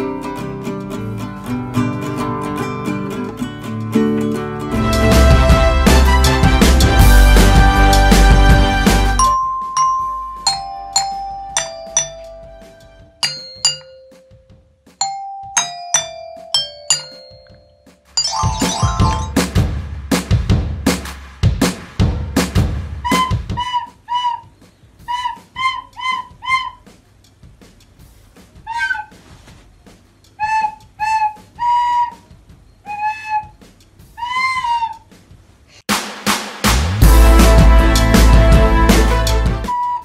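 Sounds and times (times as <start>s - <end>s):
loud music: 4.7s - 9.4s, 18.2s - 23.1s, 35.9s - 39.7s
glockenspiel notes: 9.2s - 19.6s
child playing recorder: 23.1s - 26.8s, 30.4s - 32.2s, 32.8s - 33.6s, 34.2s - 35.0s, 39.7s - 40.0s.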